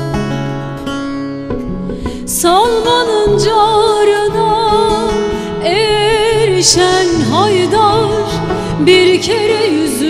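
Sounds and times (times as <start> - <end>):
plucked long-necked lute: 0.0 - 10.0.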